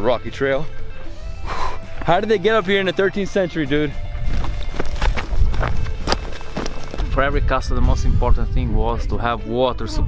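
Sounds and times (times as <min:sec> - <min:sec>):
background music: 0:00.0 - 0:10.0
footsteps on rocky trail: 0:03.7 - 0:07.4.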